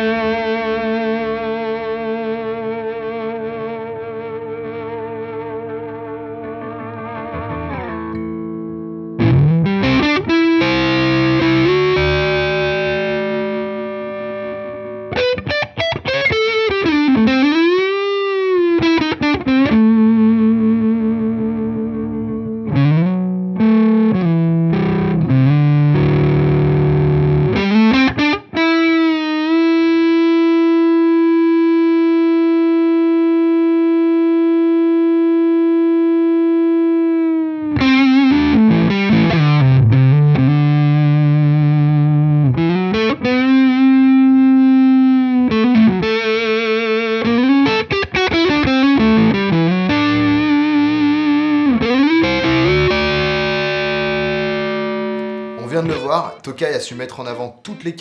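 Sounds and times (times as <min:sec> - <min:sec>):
electric guitar riffs: 0:00.0 - 0:58.0.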